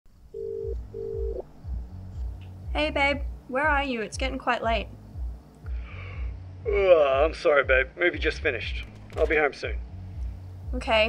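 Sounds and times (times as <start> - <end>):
telephone ringback tone: 0.4 - 1.4.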